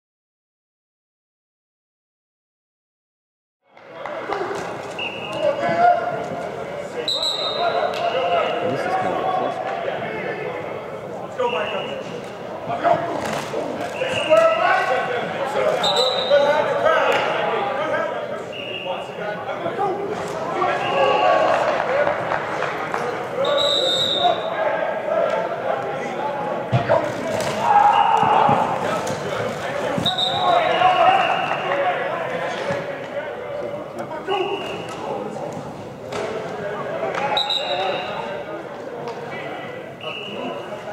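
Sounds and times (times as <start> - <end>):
voices calling and talking: 3.8 - 40.9
padded players colliding: 26.7 - 31.5
high whistle tone: 30.0 - 31.6, 40.0 - 40.6.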